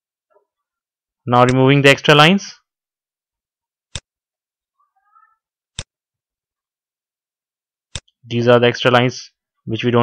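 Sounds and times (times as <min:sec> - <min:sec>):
faint high-pitched cry: 0:04.8 - 0:05.5.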